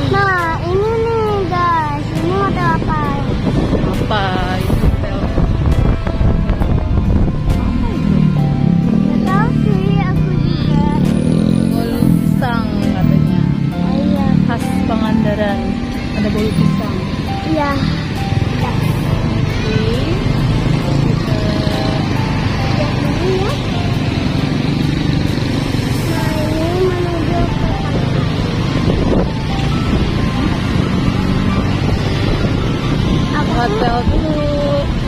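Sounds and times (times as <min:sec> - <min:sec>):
vehicle engine and road noise: 0:00.0 - 0:35.0.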